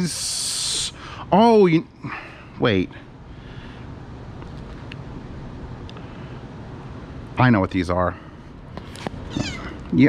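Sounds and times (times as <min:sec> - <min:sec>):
cat meowing: 0:09.3 - 0:09.9.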